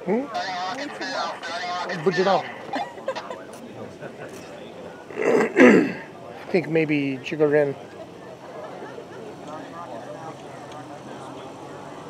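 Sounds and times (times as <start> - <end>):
man clearing his throat: 5.2 - 6.1.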